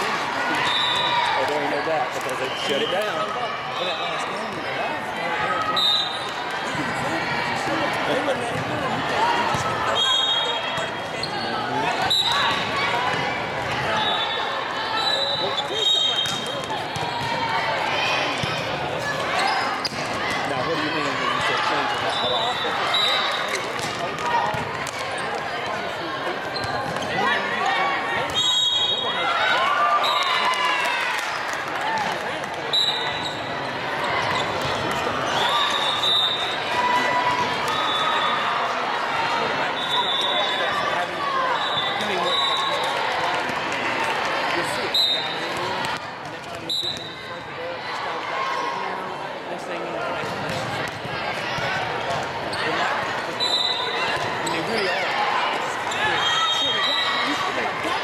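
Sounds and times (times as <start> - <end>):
people calling out and chattering: 0.0 - 58.0
shoes squeaking on court floor: 26.4 - 27.4, 32.7 - 36.6, 53.4 - 55.1.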